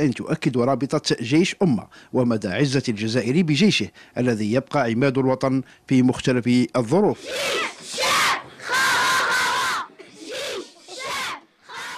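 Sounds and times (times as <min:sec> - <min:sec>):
children shouting a chant: 0:07.2 - 0:11.9.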